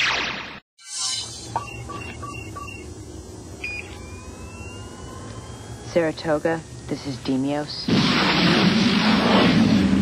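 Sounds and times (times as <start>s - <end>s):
short electronic beeps: 0.8s - 2.9s, 3.6s - 4.8s
steady low hum: 1.2s - 10.0s
faint slowly rising tone: 1.4s - 6.0s.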